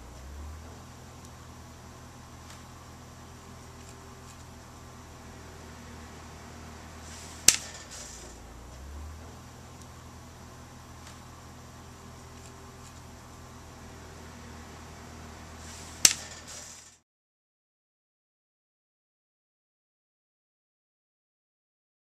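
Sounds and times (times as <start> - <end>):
steady low hum: 0.0 - 17.0
sharp click: 16.0 - 17.0.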